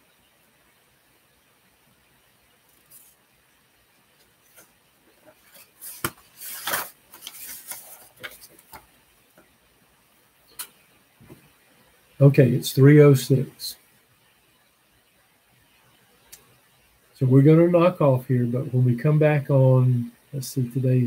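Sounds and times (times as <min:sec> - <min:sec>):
paper rustling: 0:04.2 - 0:08.9.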